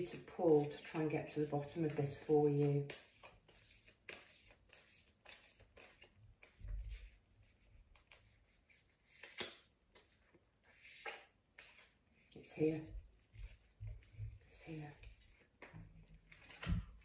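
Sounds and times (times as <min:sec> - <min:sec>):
cards shuffling: 0:07.9 - 0:12.0.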